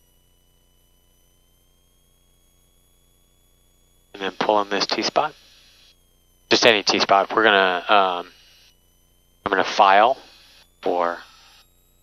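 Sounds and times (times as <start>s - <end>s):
faint steady high tones: 0.0s - 12.0s.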